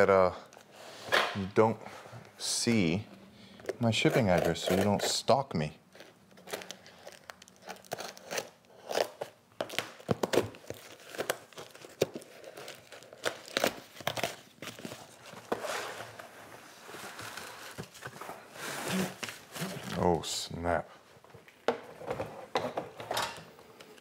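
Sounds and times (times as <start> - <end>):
plastic wrap crinkling: 5.9 - 15.5.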